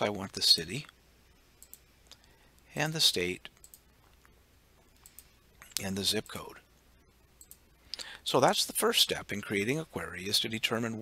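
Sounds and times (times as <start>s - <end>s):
faint computer mouse clicks: 1.6s - 2.3s, 3.6s - 4.3s, 5.0s - 5.8s, 7.4s - 8.1s.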